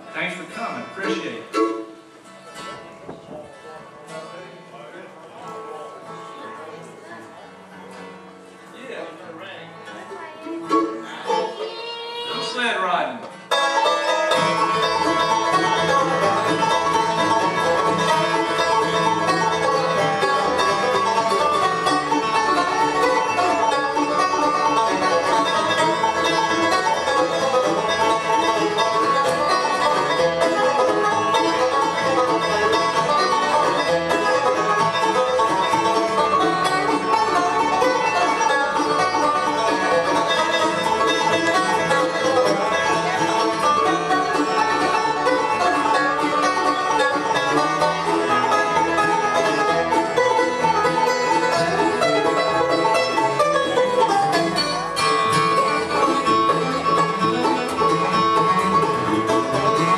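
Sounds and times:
banjo: 0.0s - 4.6s, 5.4s - 59.9s
acoustic guitars: 0.0s - 59.9s
upright bass: 13.5s - 59.9s.

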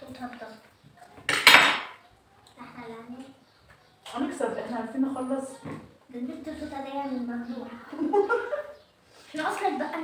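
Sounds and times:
metal tableware clattering: 1.3s - 2.0s.

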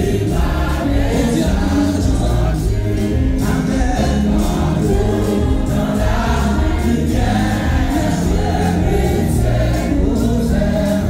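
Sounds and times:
amplified band with bass line: 0.0s - 11.0s
congregation singing worship song: 0.0s - 11.0s
person leading singing on microphone: 0.0s - 11.0s.

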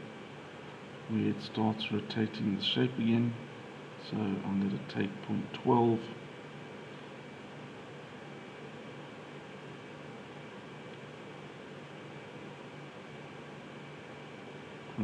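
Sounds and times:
faint low hum: 0.0s - 15.0s.

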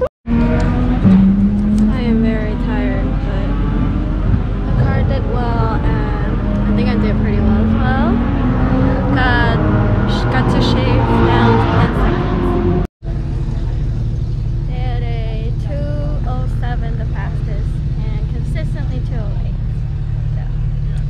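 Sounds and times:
low engine hum: 0.0s - 21.0s.

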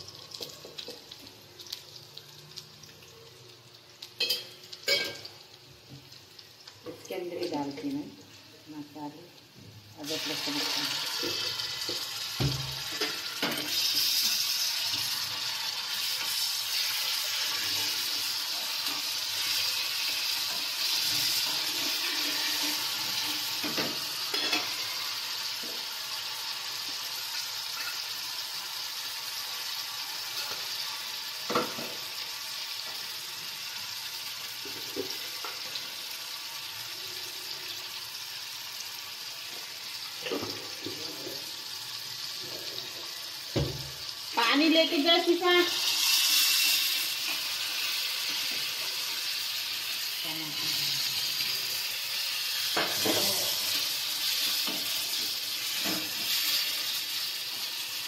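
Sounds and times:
onions sizzling in hot oil: 0.0s - 58.0s.

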